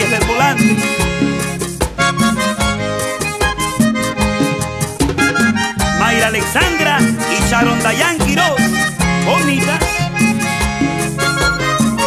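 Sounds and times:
bass line: 0:00.0 - 0:12.0
button accordion melody: 0:00.0 - 0:12.0
steady percussion: 0:00.0 - 0:12.0.

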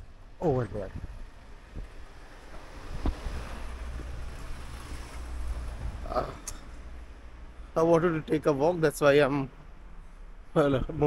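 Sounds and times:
wind rumbling on microphone: 0:00.6 - 0:06.1
car driving past: 0:01.2 - 0:06.4.

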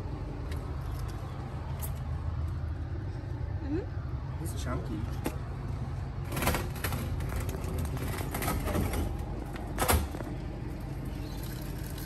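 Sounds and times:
wheelie bin scraping on concrete: 0:06.2 - 0:09.6.

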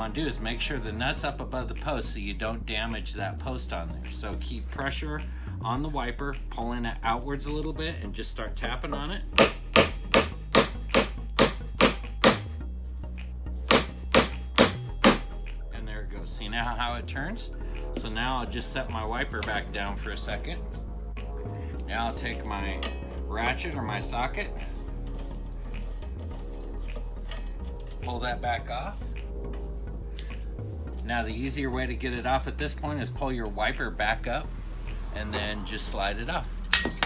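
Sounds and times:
background music: 0:00.0 - 0:37.0
hammer tapping on metal nut: 0:09.4 - 0:12.5, 0:13.7 - 0:15.2.

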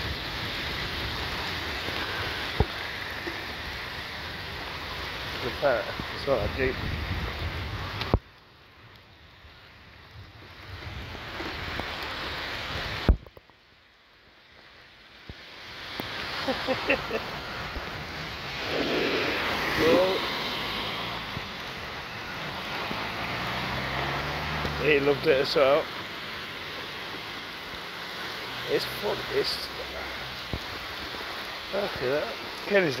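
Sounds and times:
heavy rain hissing: 0:00.0 - 0:13.2, 0:13.8 - 0:33.0.

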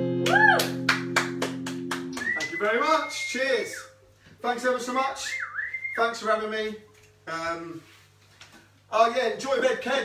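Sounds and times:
high whistling tone: 0:02.2 - 0:04.0, 0:05.2 - 0:06.1.

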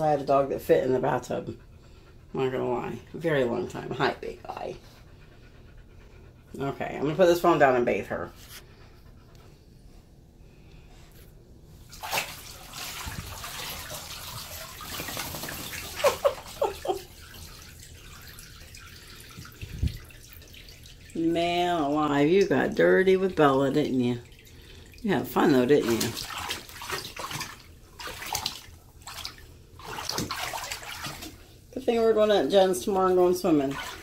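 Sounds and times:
water splashing in a bathtub: 0:00.0 - 0:05.9, 0:06.5 - 0:09.1, 0:11.8 - 0:34.0.

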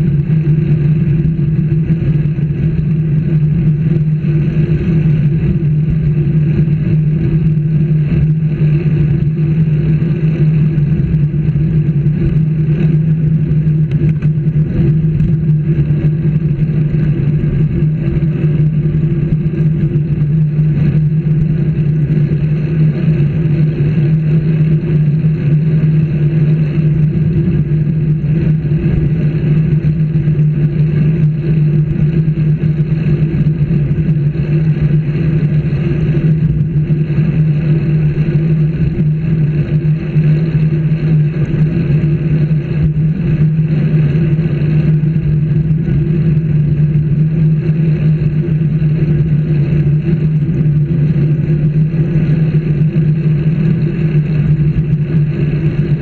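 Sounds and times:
vehicle engine drone and road rumble: 0:00.0 - 0:56.0.

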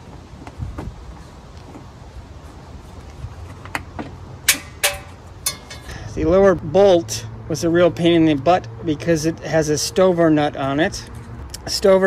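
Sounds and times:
wrench clicks and knocks on metal: 0:04.5 - 0:06.0.

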